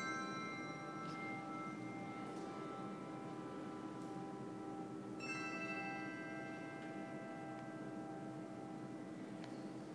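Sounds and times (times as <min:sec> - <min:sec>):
handbells ringing: 0:00.0 - 0:09.0.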